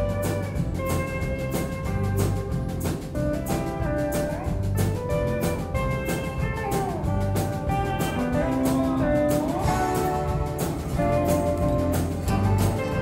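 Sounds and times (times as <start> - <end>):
live country band playing: 0.0 - 13.0
sliding lead guitar line: 0.0 - 13.0.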